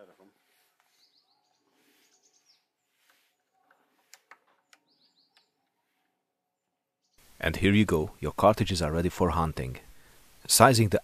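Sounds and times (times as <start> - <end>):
faint birds chirping: 0.0 - 8.8.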